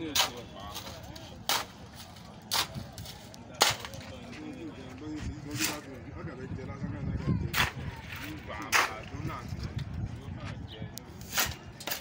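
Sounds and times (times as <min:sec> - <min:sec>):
digging tool striking hard ground: 0:00.0 - 0:04.1, 0:07.5 - 0:09.1, 0:11.2 - 0:12.0
people talking: 0:00.0 - 0:12.0.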